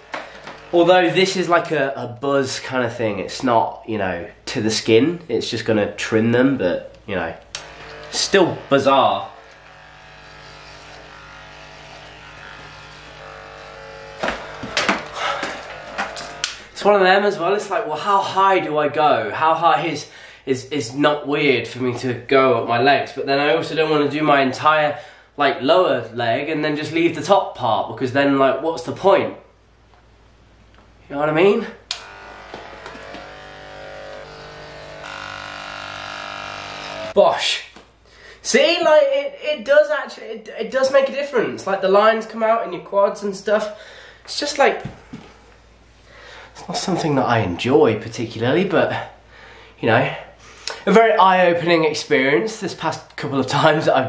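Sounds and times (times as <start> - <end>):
electric hair clippers buzzing: 0.0 - 1.2, 7.5 - 16.7, 31.9 - 37.2
sharp knocks: 14.2 - 16.3.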